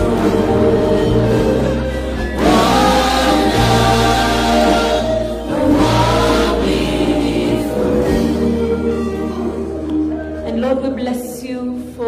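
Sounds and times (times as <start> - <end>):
choir singing a hymn: 0.0 - 10.1
instrumental backing: 0.0 - 12.0.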